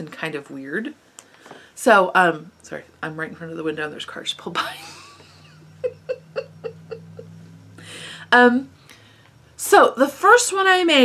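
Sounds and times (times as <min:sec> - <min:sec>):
steady low hum: 0:00.0 - 0:11.0
woman giggling softly: 0:04.7 - 0:07.5.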